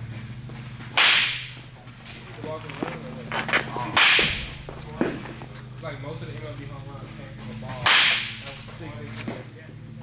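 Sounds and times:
bat cracking against ball: 0:00.8 - 0:01.7, 0:03.5 - 0:05.3, 0:07.8 - 0:08.4.

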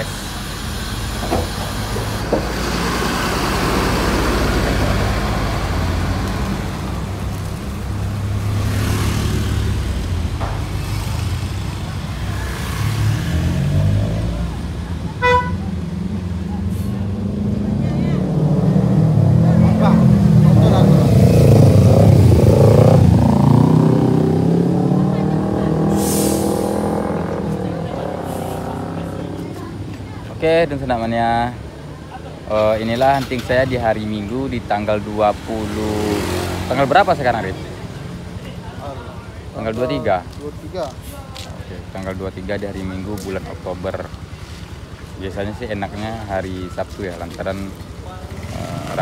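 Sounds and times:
bus horn toot: 0:15.2 - 0:15.7.

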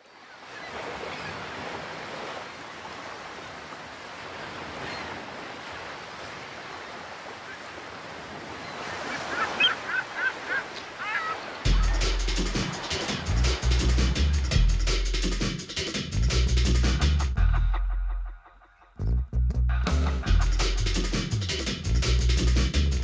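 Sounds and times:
surf washing on shore: 0:00.0 - 0:14.5
gulls calling: 0:02.7 - 0:14.5
musical beat with bass: 0:11.7 - 0:23.0.

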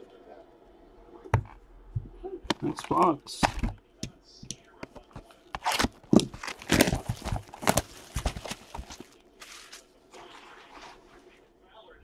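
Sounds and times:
plastic wrapped box crinkling: 0:05.0 - 0:10.0.

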